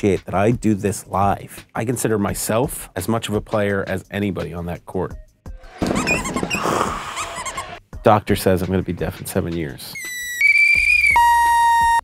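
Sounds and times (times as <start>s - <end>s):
sneaker squeaks: 5.8s - 7.8s.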